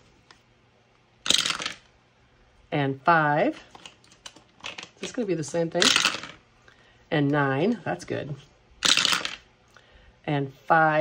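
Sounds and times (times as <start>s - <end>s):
dice clattering in wooden box: 1.3s - 1.8s, 5.8s - 6.4s.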